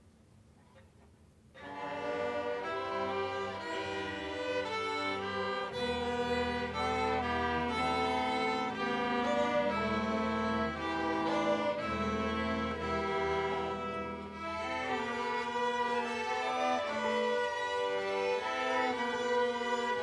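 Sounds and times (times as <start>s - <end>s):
violins playing bowed notes: 1.6s - 20.0s
low double bass line: 3.7s - 15.5s.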